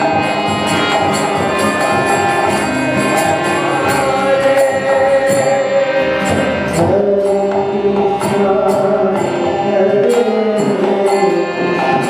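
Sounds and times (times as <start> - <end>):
cymbal strikes: 0.0 - 7.6
harmonium: 0.0 - 12.0
man singing a chant: 0.0 - 12.0.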